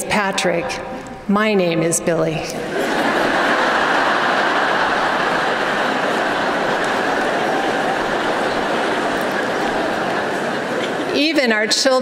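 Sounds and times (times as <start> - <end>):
large audience laughing: 2.6 - 11.4.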